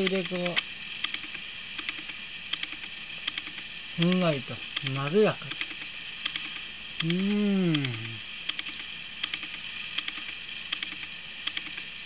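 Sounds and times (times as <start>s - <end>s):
soft clicking ticks: 0.0s - 11.9s
steady hiss: 0.0s - 12.0s.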